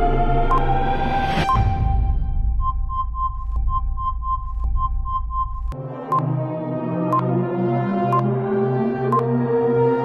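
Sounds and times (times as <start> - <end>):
electronic ambient music: 0.0 - 10.0.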